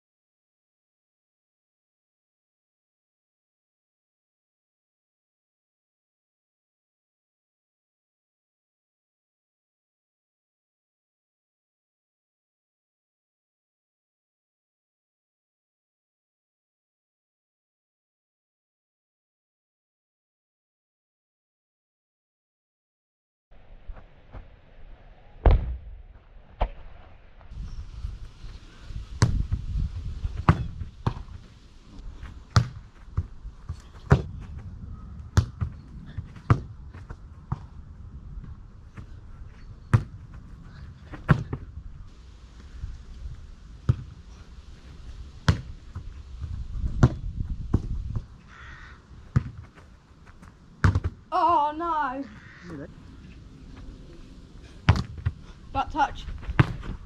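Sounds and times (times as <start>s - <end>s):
foot kicking football: 25.4s - 26.9s, 29.1s - 31.5s, 32.1s - 37.8s, 38.4s - 41.8s, 43.8s - 44.2s, 45.4s - 51.3s, 54.7s - 57.0s.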